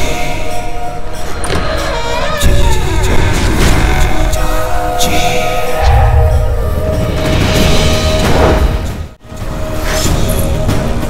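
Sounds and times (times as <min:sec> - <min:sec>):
suspense background score: 0:00.0 - 0:11.0.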